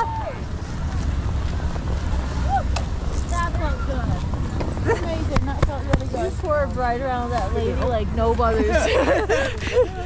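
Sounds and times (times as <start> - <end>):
wind buffeting microphone: 0.0 - 10.0
people's voices: 1.8 - 10.0.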